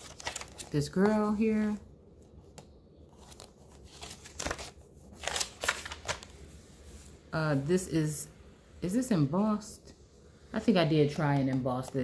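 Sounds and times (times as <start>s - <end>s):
paper pages rustling: 0.0s - 7.2s.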